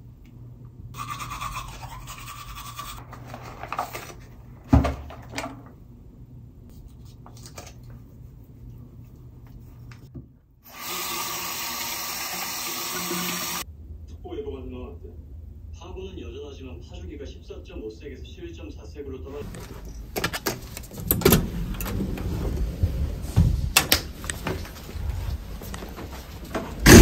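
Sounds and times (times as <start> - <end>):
toothbrush scrubbing teeth: 1.0 - 3.1.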